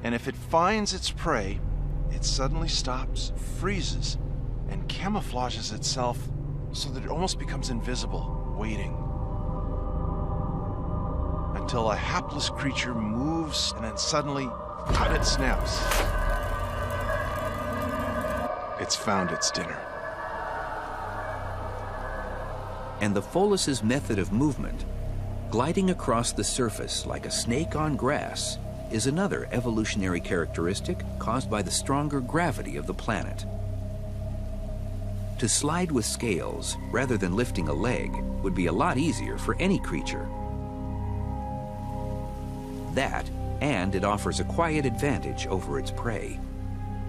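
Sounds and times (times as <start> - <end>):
low rumble: 0.0 - 42.4
ambient drone music: 0.0 - 47.0.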